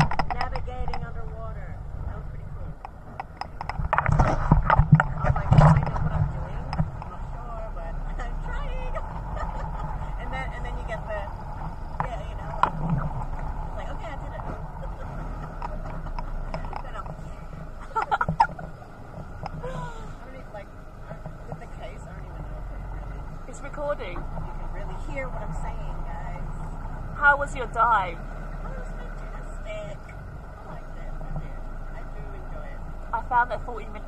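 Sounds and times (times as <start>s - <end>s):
faint voices: 0.0s - 34.0s
low rumble: 0.0s - 34.0s
woman laughing: 8.7s - 10.5s, 17.8s - 18.7s, 19.6s - 20.3s.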